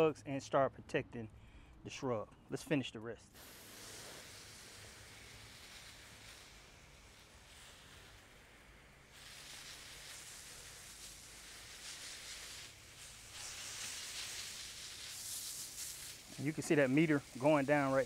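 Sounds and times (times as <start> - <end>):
hiss of hose sprayer: 3.3 - 18.0.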